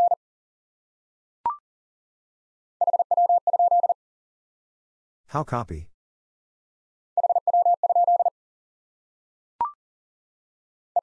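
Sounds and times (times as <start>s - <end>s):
morse code beep: 2.8s - 4.0s, 7.2s - 8.3s.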